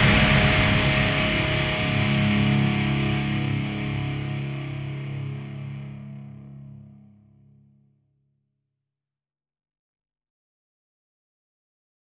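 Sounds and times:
heavy metal chord ringing out: 0.0s - 7.5s.

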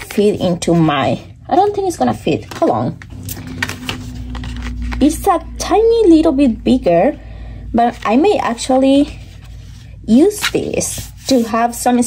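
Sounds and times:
paper packaging being handled: 0.0s - 5.2s
steady low hum: 0.0s - 12.0s.

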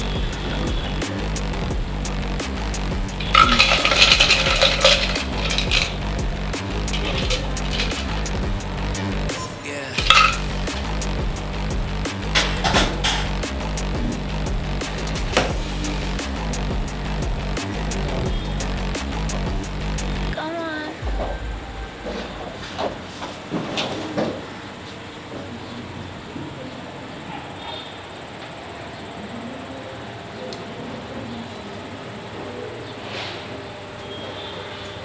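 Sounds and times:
background music with steady beat: 0.0s - 23.6s
metal cocktail shaker clinking: 3.2s - 6.0s, 6.8s - 8.3s, 10.0s - 10.7s.

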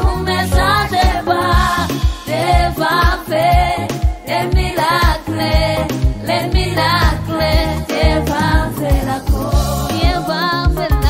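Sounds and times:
steady beat: 0.0s - 11.0s
women singing gospel song: 0.0s - 11.0s.

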